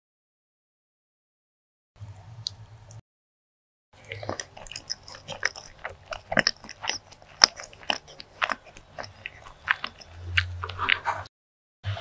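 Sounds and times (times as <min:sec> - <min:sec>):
chewing soft cake: 0:04.0 - 0:11.3.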